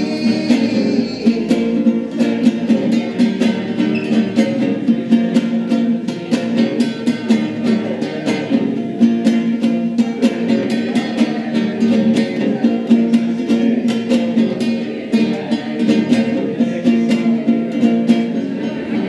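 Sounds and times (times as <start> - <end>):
classical guitar strumming: 0.0 - 19.0.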